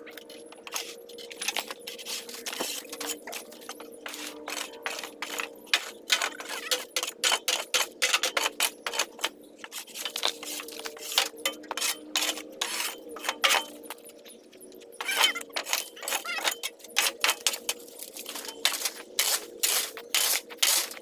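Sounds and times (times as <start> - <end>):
metal shovel scraping debris: 0.7 - 14.0, 15.0 - 21.0
debris rattling and clinking: 15.0 - 19.0.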